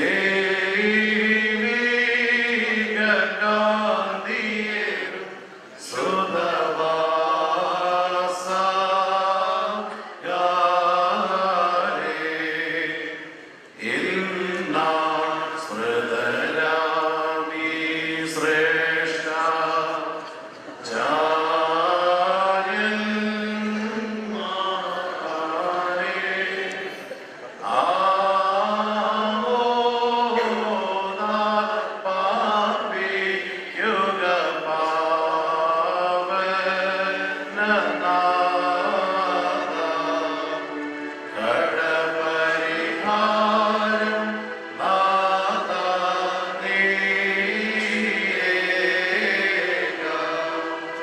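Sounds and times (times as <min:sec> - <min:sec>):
slow chanted singing: 0:00.0 - 0:51.0.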